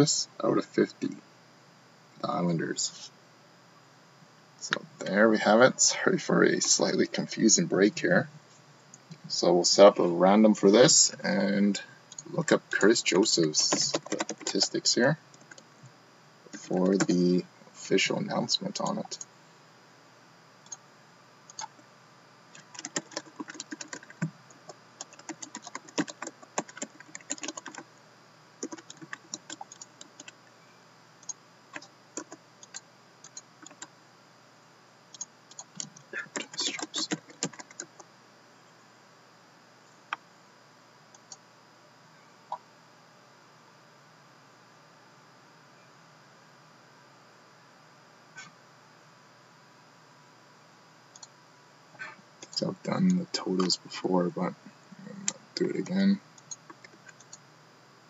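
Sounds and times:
faint room hiss: 0.0s - 58.0s
typing on computer keyboard: 13.6s - 14.7s, 22.6s - 24.3s, 25.0s - 27.8s, 28.6s - 30.4s, 31.2s - 33.9s, 35.2s - 38.0s
computer mouse clicks: 21.5s - 21.8s.

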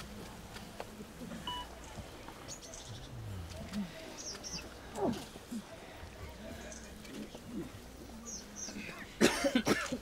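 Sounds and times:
person coughing: 9.2s - 10.0s.

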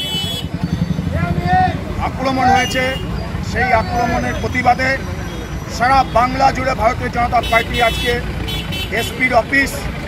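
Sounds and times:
bus engine idling: 0.0s - 10.0s.

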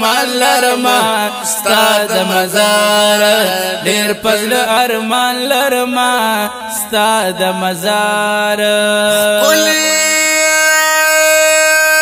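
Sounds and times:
person singing long note: 9.4s - 12.0s.

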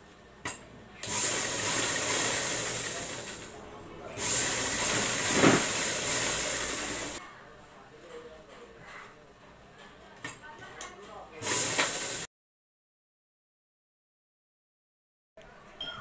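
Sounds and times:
sewing machine stitching: 1.0s - 3.5s, 4.1s - 7.2s, 11.4s - 12.3s.

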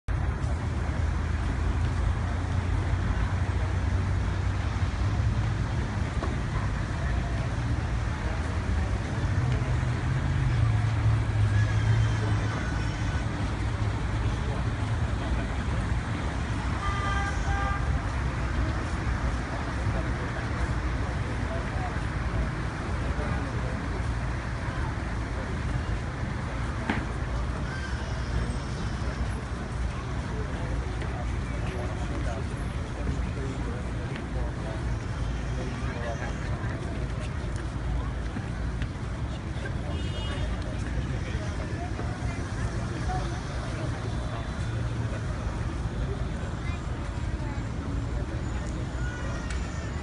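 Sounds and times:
traffic rumble: 0.0s - 50.0s
crowd murmur: 0.1s - 50.0s
car horn toot: 16.8s - 17.9s.

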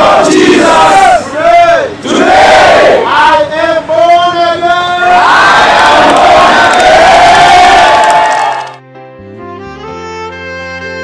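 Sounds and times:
crowd shouting: 0.0s - 3.8s, 4.7s - 8.8s.

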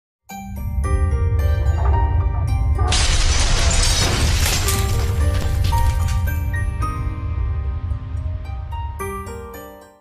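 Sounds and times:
shattering sound effect: 2.9s - 6.6s.

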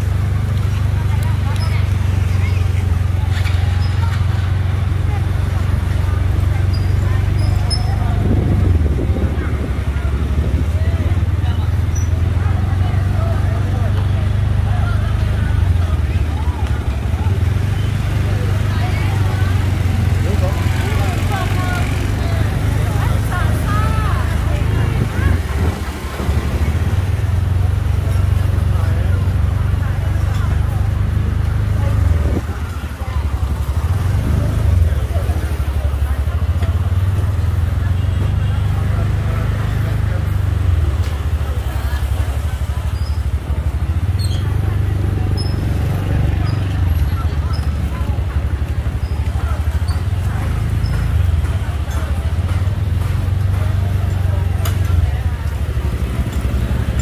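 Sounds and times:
chatter of passers-by: 0.0s - 57.0s
motorbikes moving past: 0.0s - 57.0s.

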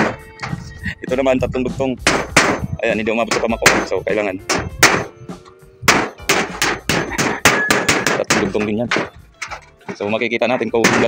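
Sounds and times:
hammer striking metal roofing: 0.0s - 0.7s, 2.0s - 11.0s.

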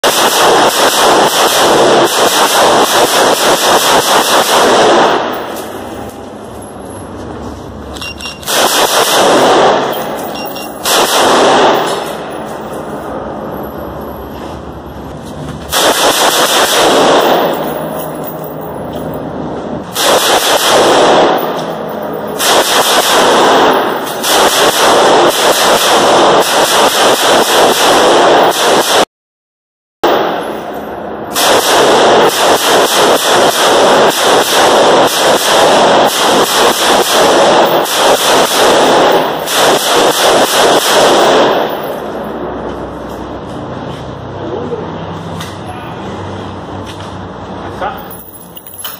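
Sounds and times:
rifle firing rapid shots: 0.0s - 6.0s, 8.4s - 12.7s, 15.7s - 18.2s, 19.9s - 29.0s, 31.3s - 42.1s.

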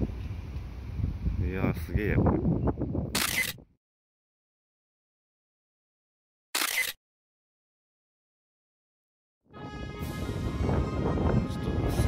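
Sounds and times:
camera shutter snap: 3.2s - 3.6s, 6.6s - 7.0s.

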